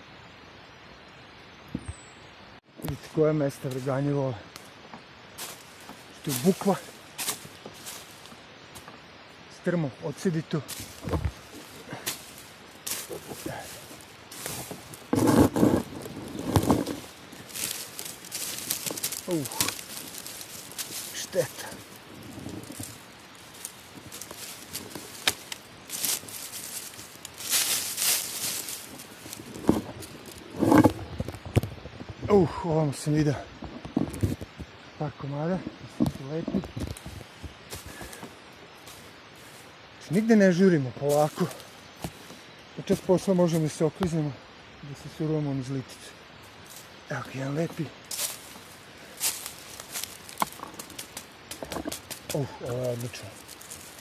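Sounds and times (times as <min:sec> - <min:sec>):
dry leaves rustling and crackling: 0:02.9 - 0:44.3, 0:46.4 - 0:54.0.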